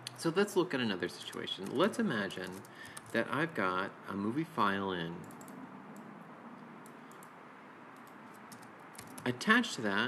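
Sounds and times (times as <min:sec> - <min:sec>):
low room hiss: 0:00.0 - 0:10.0
faint computer mouse clicks: 0:06.8 - 0:07.3.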